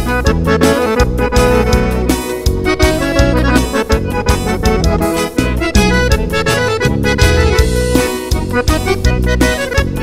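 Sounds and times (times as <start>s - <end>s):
accordion dance music: 0.0s - 10.0s.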